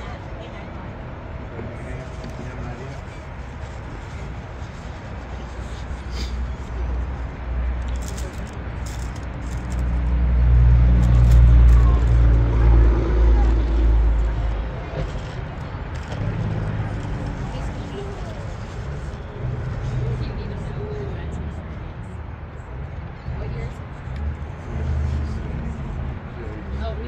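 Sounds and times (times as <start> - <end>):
engine passing by: 0.0 - 27.0.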